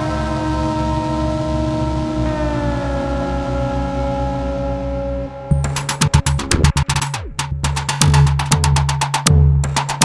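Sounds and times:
held synthesizer chord: 0.0 - 7.2
tone sliding downward in pitch: 0.0 - 7.4
low pulsing drone: 0.0 - 8.1.

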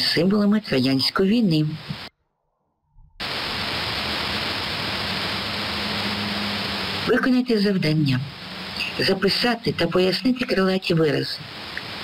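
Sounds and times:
recording static hiss: 0.0 - 2.1, 3.2 - 12.0.

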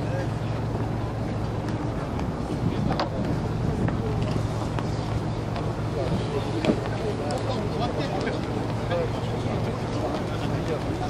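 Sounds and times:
boat engine humming: 0.0 - 11.0
wind on microphone: 0.6 - 7.1.

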